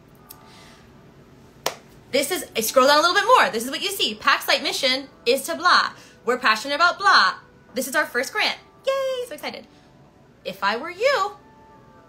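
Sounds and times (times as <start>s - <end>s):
hands clapping: 1.6s - 2.0s.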